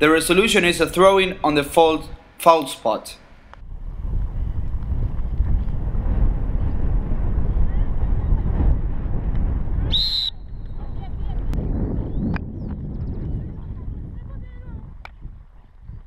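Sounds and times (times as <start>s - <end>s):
wind rumbling on microphone: 3.5s - 16.0s
high-pitched whistle blast: 9.9s - 10.8s.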